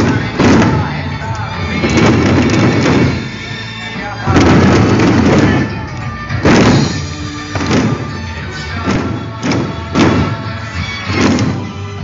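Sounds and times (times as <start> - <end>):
heavy drum beats: 0.0 - 12.0.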